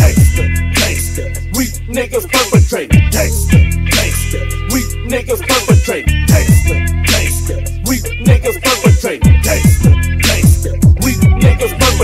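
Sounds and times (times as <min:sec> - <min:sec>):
deep sliding bass: 0:00.0 - 0:02.3, 0:03.0 - 0:05.4, 0:06.1 - 0:08.6, 0:09.3 - 0:12.0
hip hop beat: 0:00.0 - 0:12.0
snare and hi-hat pattern: 0:00.0 - 0:12.0.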